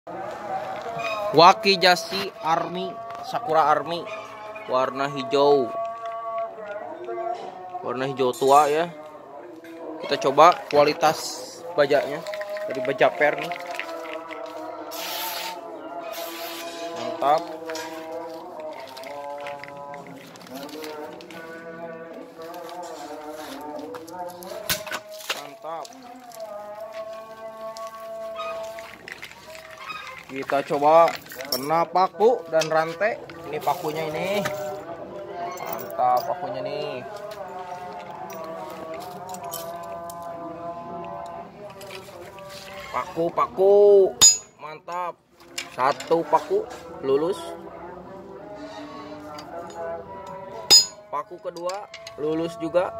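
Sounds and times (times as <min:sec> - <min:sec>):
person singing drawn-out notes: 0:00.1 - 0:30.3.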